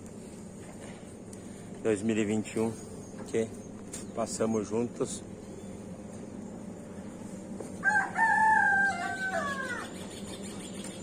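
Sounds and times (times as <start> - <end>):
rooster crowing: 7.8 - 10.1.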